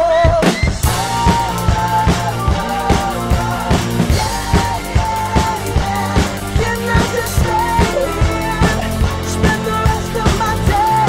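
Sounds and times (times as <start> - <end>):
recorded backing track: 0.0 - 11.0
rock drum kit groove: 0.0 - 11.0.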